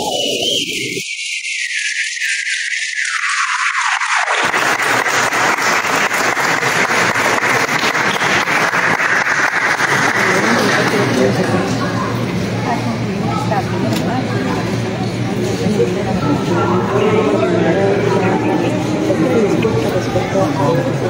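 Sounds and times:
crowd applauding: 3.0 - 13.4.

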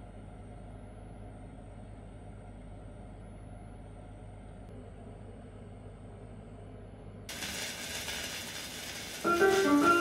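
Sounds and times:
record hiss and crackle: 7.3 - 10.0.

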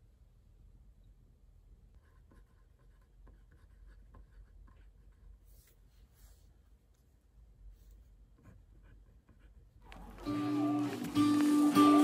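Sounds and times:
pen scratching on paper: 2.0 - 6.4, 8.4 - 9.8.

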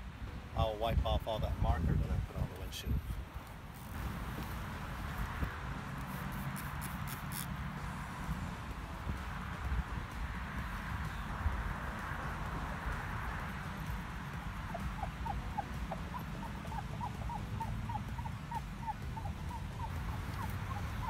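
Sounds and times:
steady low rumble: 7.5 - 21.0.

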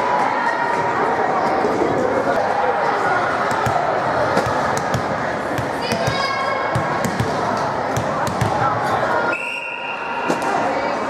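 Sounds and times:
spectators chatter: 0.0 - 11.0
referee whistle blast: 9.3 - 10.4.

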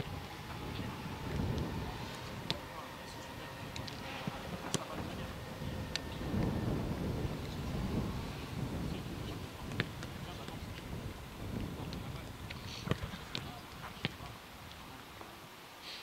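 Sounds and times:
wind rumble on microphone: 0.0 - 15.2
faint voices: 0.0 - 15.5.

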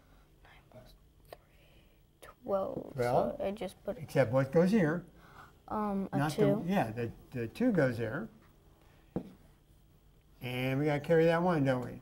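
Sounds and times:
faint whispering: 0.4 - 1.6.

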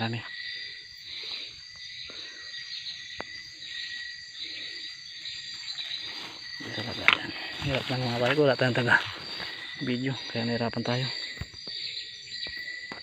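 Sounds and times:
crickets and insects trilling: 0.0 - 13.0
leaves and grass rustling: 4.6 - 11.4.

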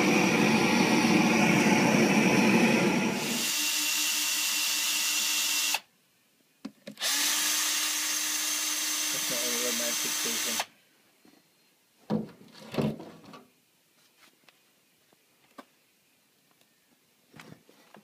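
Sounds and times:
loud rushing roar: 0.0 - 3.4
cordless drill driving screws: 3.2 - 5.9, 7.0 - 10.7.

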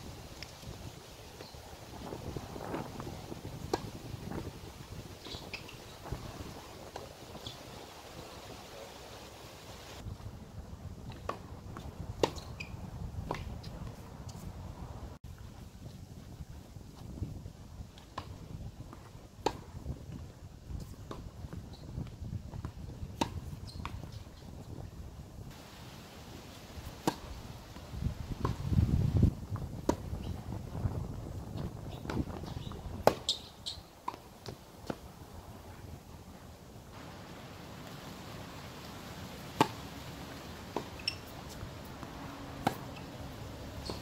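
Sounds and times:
wind rumble on microphone: 0.0 - 8.8, 9.8 - 25.6, 26.2 - 33.6
tennis ball bouncing: 26.9 - 27.3, 32.0 - 35.0, 39.5 - 39.8, 40.7 - 44.0
tennis ball struck by racket: 26.9 - 27.3, 32.0 - 33.4, 39.5 - 39.8, 40.7 - 43.1.

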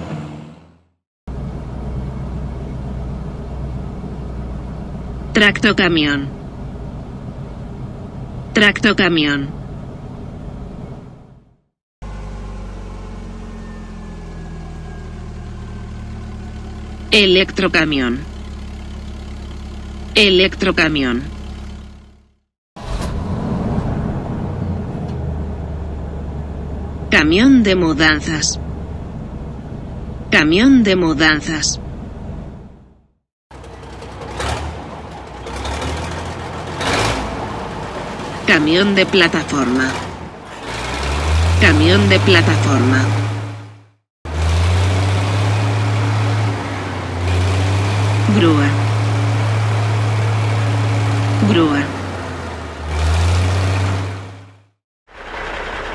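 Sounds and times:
truck engine idling: 1.3 - 22.4, 31.2 - 55.9
spoken word: 5.4 - 6.3, 8.6 - 9.5, 17.1 - 18.2, 20.2 - 21.3, 27.1 - 28.6, 41.6 - 43.1, 48.3 - 48.8, 51.4 - 52.0.

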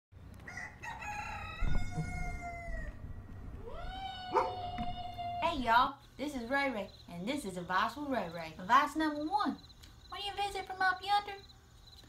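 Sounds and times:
rooster crowing: 0.4 - 5.4.

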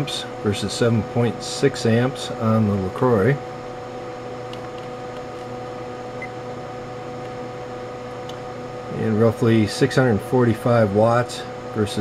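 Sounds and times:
power supply humming: 0.0 - 12.0.

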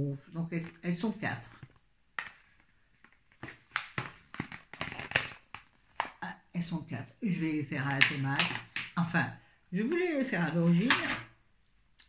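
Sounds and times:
plastic food tray crinkling: 1.5 - 6.2.

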